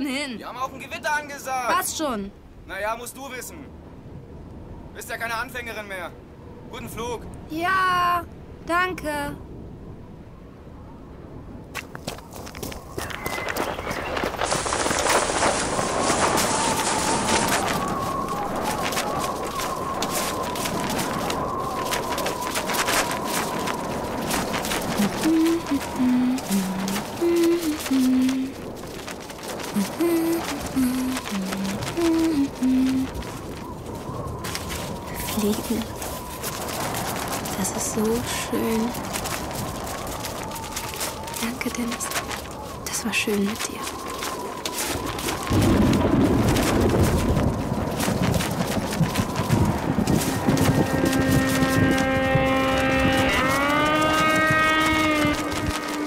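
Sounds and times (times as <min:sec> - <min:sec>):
rushing wind-like noise: 0:00.5 - 0:56.0.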